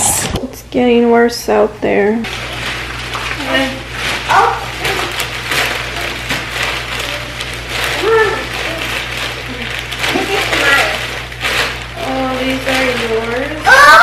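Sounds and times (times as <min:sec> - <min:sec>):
plastic bag crinkling: 0:02.2 - 0:14.0.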